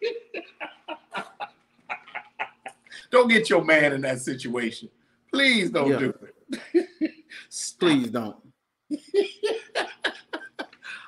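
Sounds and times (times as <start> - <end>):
man laughing in breathy bursts: 9.1 - 11.0.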